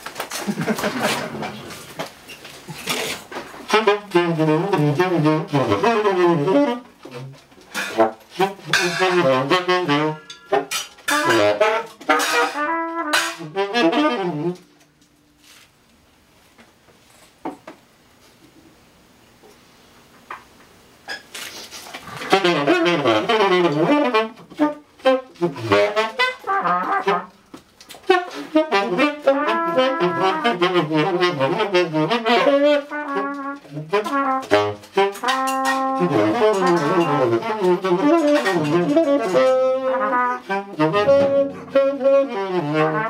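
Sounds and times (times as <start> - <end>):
drums: 0.0 - 15.7, 19.8 - 43.0
saxophone and trumpet jazz: 0.7 - 15.7, 21.4 - 43.0
double bass: 35.8 - 43.0.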